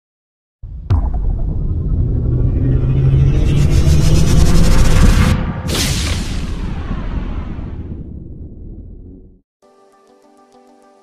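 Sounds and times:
deep rumble: 0:00.6 - 0:09.4.

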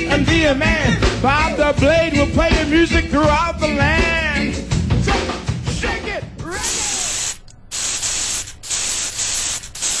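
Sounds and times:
person's voice: 0:05.9 - 0:07.2
aerosol spray can hissing: 0:06.6 - 0:10.0.

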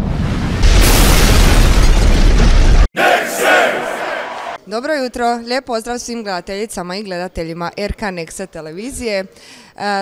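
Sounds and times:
deep explosion blast: 0:00.0 - 0:02.9.

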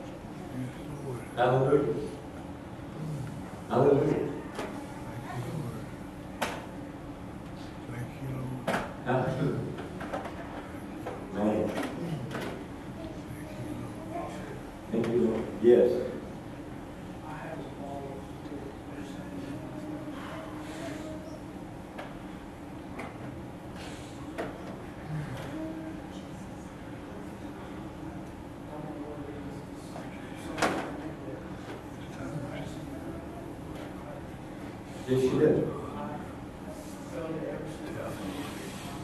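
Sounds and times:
faint room hum and murmur: 0:00.0 - 0:39.0.

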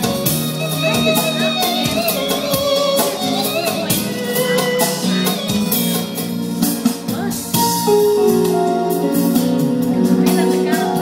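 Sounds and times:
electronic keyboard playing: 0:00.0 - 0:11.0.

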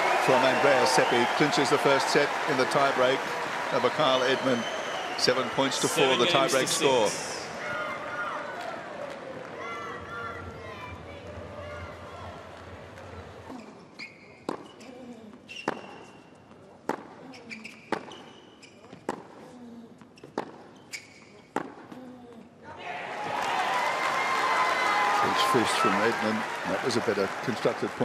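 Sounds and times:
crowd applauding: 0:00.0 - 0:07.6, 0:22.9 - 0:28.0
shoe squeaks on court: 0:13.5 - 0:14.9, 0:15.5 - 0:16.3, 0:17.2 - 0:19.1, 0:20.1 - 0:21.5.

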